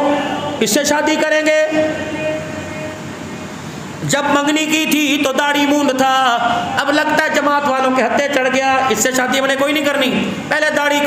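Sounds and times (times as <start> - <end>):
man speaking: 0.0 - 2.9, 4.0 - 11.0
electric fan hissing: 0.0 - 11.0.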